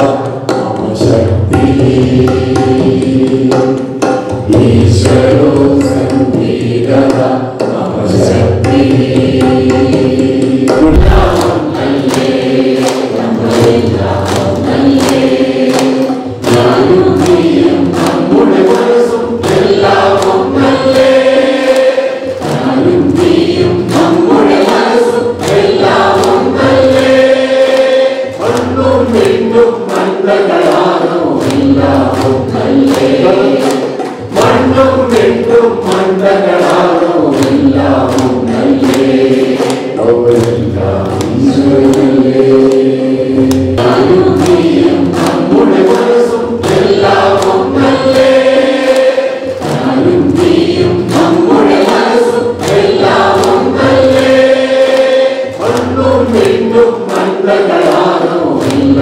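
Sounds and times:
group singing in unison: 0.0 - 59.0
hands clapping a beat: 0.0 - 59.0.

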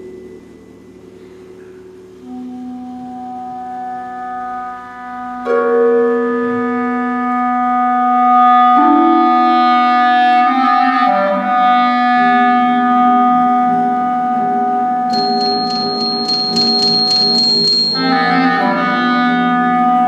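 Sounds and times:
clarinet long held notes: 2.2 - 16.6, 18.0 - 20.0.

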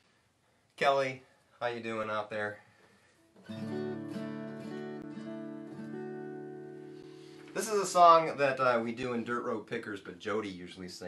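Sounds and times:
acoustic guitar strumming: 3.4 - 7.8.

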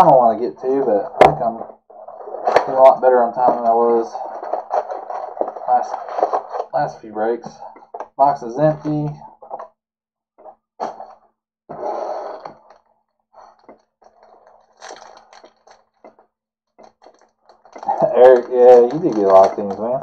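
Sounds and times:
man speaking: 0.0 - 1.7, 2.5 - 4.5, 5.5 - 9.3, 17.8 - 20.0
foil card packs rustling: 2.5 - 6.7, 13.5 - 16.2, 16.8 - 20.0.

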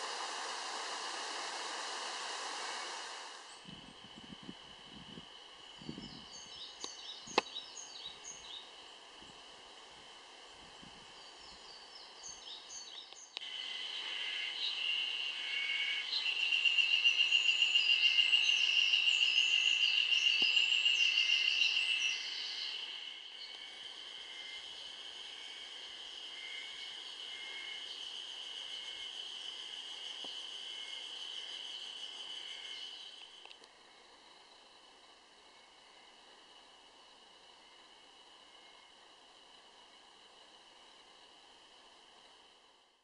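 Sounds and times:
high-pitched insect buzz: 0.0 - 34.7
birds singing: 5.6 - 9.0, 11.0 - 25.0, 31.2 - 33.4.

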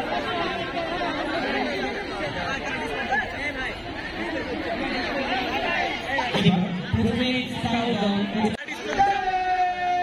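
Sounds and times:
schoolchildren chattering: 0.0 - 9.3.

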